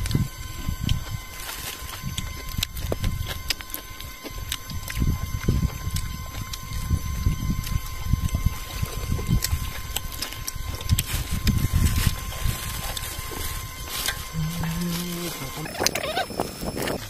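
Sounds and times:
low rumbling on microphone: 4.3s - 17.0s.

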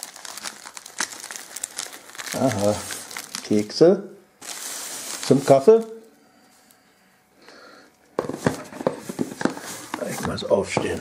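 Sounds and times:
packaging rustling and crinkling: 0.0s - 3.7s, 4.4s - 6.1s, 8.2s - 11.0s.

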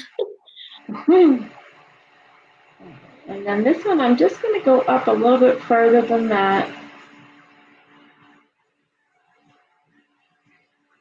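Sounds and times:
person speaking: 0.0s - 1.5s.

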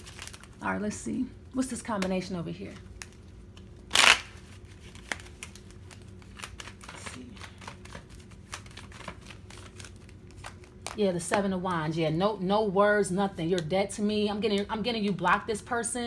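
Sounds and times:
cards clicking and rustling: 1.9s - 11.4s.

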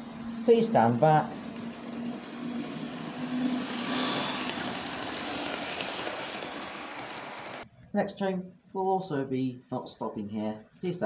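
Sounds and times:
train passing: 0.0s - 7.6s.

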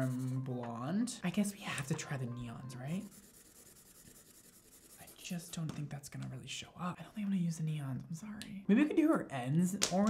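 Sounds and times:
marker scratching on paper: 0.0s - 0.5s, 2.9s - 5.7s.

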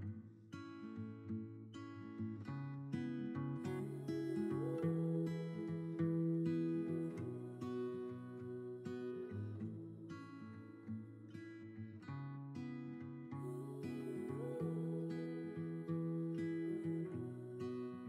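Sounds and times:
acoustic guitar plucked and strummed: 0.0s - 18.0s.

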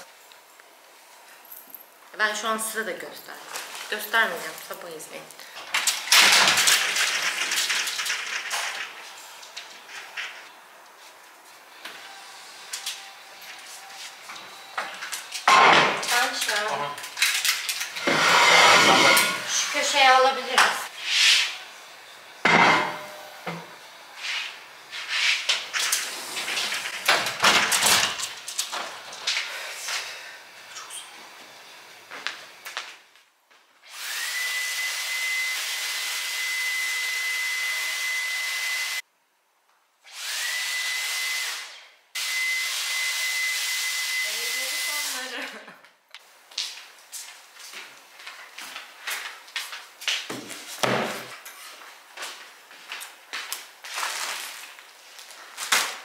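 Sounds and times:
electric appliance motor whining: 17.8s - 19.8s.

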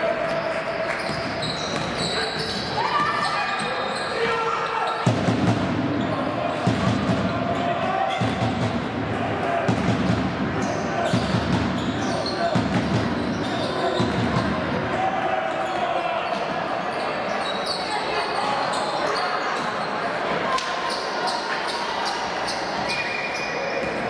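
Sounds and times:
shoes squeaking: 0.3s - 4.9s, 13.1s - 14.1s.

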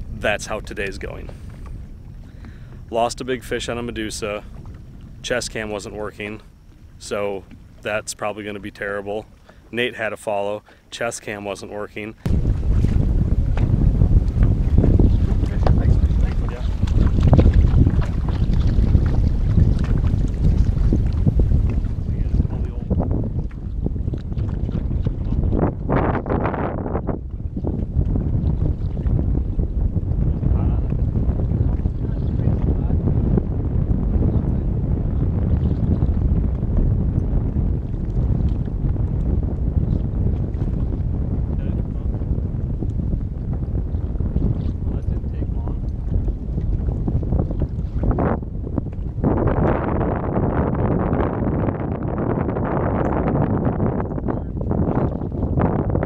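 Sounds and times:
wind buffeting microphone: 0.0s - 10.5s, 11.3s - 56.0s.

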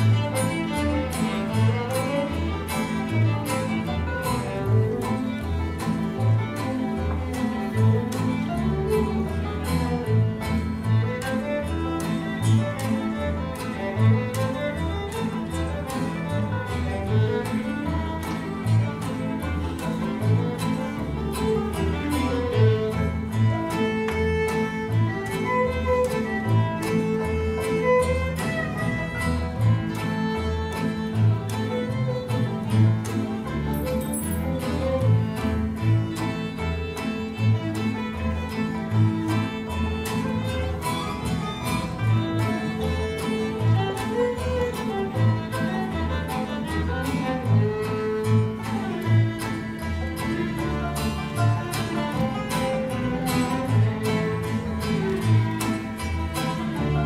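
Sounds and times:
acoustic guitar: 0.0s - 57.0s
violins playing fiddle tune: 0.0s - 57.0s.

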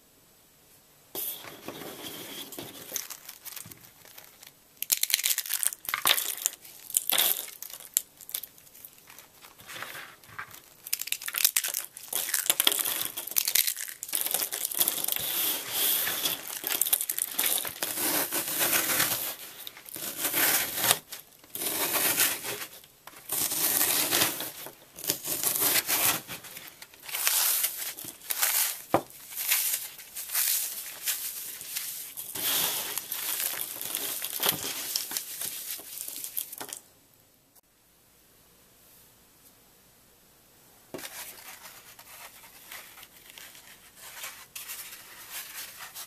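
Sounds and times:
floral foam crunching: 1.4s - 36.8s.

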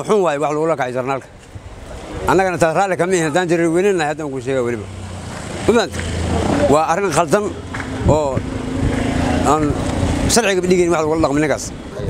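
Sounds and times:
man speaking: 0.0s - 1.4s, 2.0s - 4.9s, 5.6s - 8.5s, 9.4s - 12.0s.

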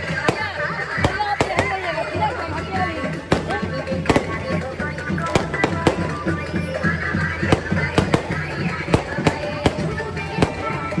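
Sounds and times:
fireworks bursting with sharp bangs: 0.0s - 11.0s
music playing: 0.0s - 11.0s.

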